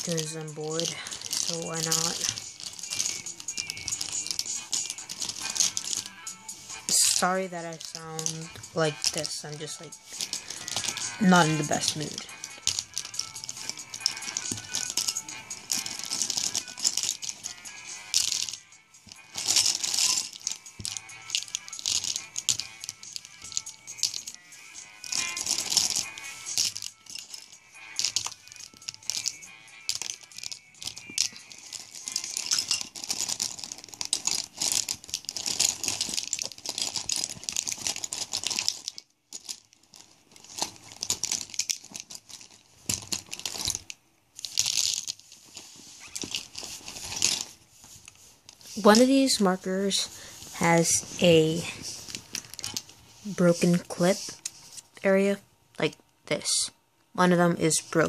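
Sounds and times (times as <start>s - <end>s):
plastic markers clattering: 0.0s - 54.8s.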